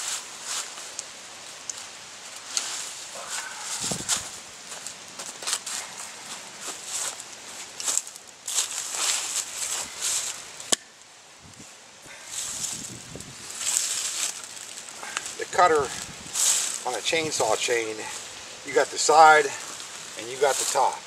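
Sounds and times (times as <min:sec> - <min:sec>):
footsteps crunching through dry leaves: 0:00.0 - 0:10.6, 0:12.1 - 0:21.0.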